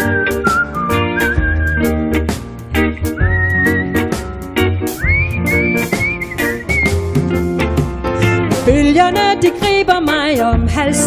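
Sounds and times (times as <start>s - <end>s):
person whistling a melody: 0.0s - 2.2s, 3.0s - 4.2s, 4.8s - 7.3s
reggae band playing: 0.0s - 11.0s.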